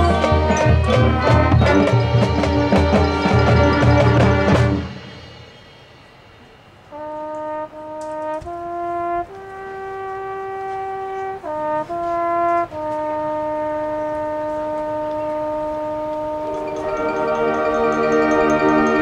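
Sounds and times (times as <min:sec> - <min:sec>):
solo brass melody: 0:00.0 - 0:05.3, 0:06.9 - 0:19.0.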